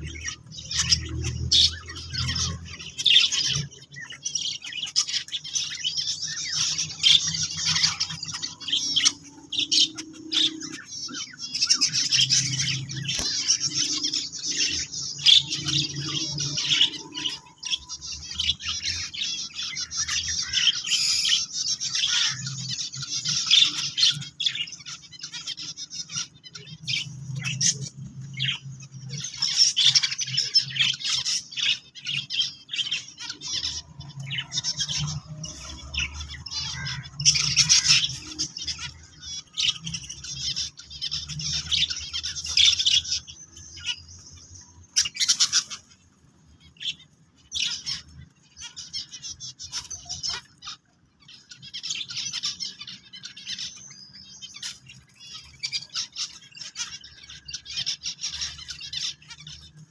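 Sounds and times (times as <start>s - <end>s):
finches chirping: 0.0s - 59.9s.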